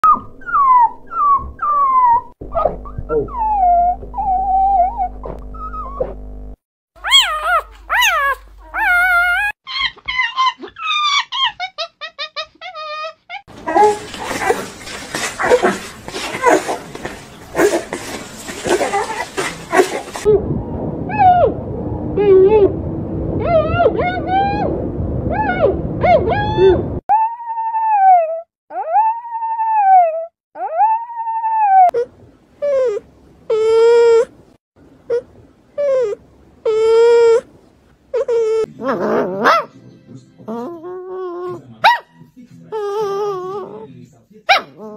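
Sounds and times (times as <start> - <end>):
puppies whimpering and whining: 0.0 - 6.2, 7.0 - 20.4, 23.4 - 24.7, 25.3 - 34.3, 35.1 - 37.4, 38.2 - 39.7, 40.4 - 41.6, 42.7 - 43.9
low hum: 0.0 - 6.6, 13.5 - 27.0.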